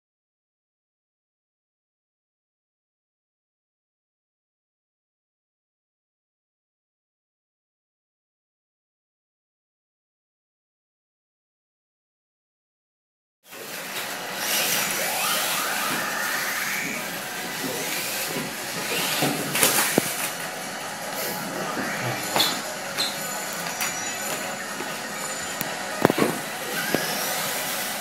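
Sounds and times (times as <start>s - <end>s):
electric motors whining: 13.5s - 28.0s.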